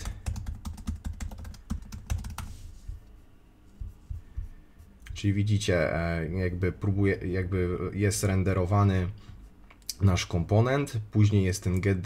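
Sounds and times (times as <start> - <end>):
fast keyboard typing: 0.0 - 2.5.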